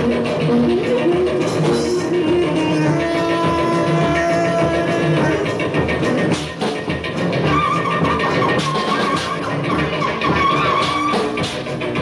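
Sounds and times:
live band with drums: 0.0 - 12.0
high squealing note: 7.5 - 11.5.

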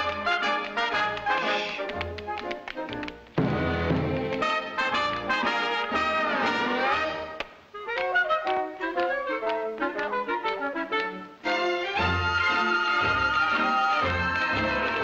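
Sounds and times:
orchestra playing brass dance music: 0.0 - 2.6, 3.4 - 15.0.

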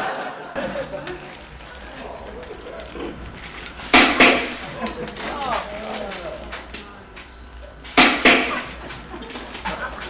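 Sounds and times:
robot shooting ball thumps: 7.9 - 8.6.

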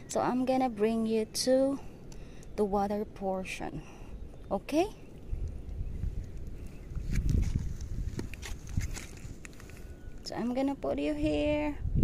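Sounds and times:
low microphone rumble: 5.0 - 12.0.

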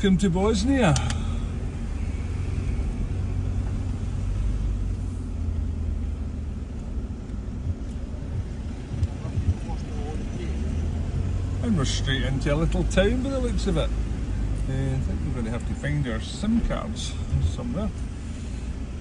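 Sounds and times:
low engine and road rumble: 0.0 - 19.0.

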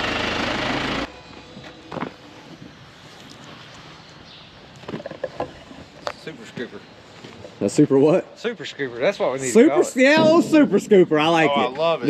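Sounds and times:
diesel engine idling: 0.0 - 1.1.

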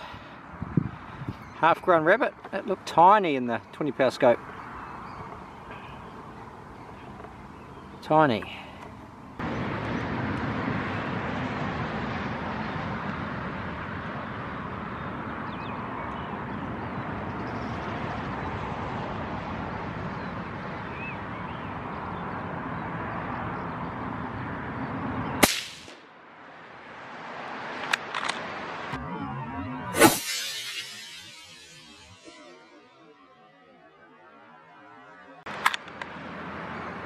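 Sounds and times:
rushing background noise: 0.0 - 37.0
rifle shot: 25.4 - 26.0.

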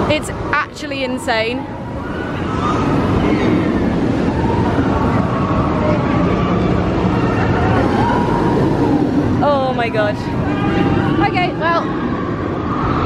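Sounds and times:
roller coaster train roaring: 0.0 - 13.0.

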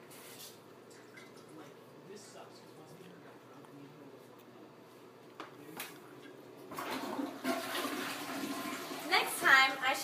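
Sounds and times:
toilet flushing rushing water: 6.7 - 9.8.

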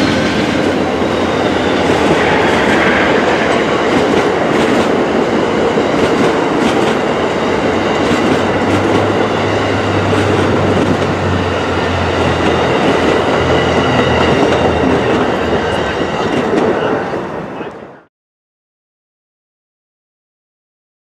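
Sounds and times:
train wheels rumbling on rails: 0.0 - 18.1.

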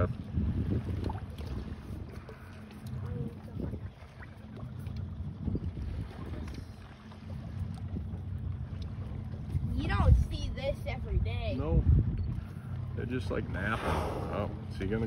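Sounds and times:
water lapping at boat hull: 0.0 - 15.0
wind buffeting microphone: 0.0 - 15.0.

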